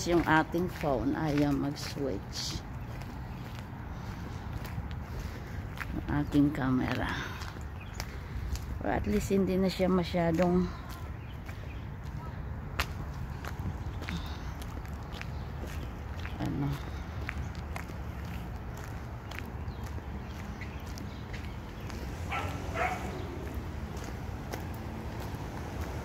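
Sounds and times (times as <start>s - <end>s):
footsteps: 10.2s - 26.0s.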